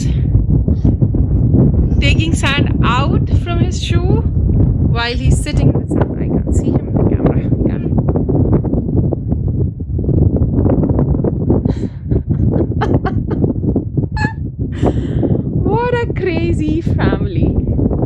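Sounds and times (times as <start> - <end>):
wind buffeting microphone: 0.0 - 18.0.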